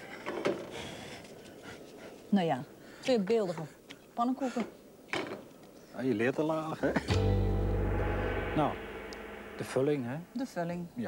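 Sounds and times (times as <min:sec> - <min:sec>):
gong ringing: 0:07.1 - 0:10.6.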